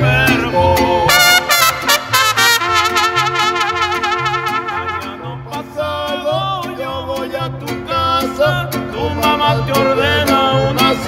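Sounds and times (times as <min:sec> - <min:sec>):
strummed guitars: 0:00.0 - 0:11.0
trumpets playing: 0:01.1 - 0:05.5.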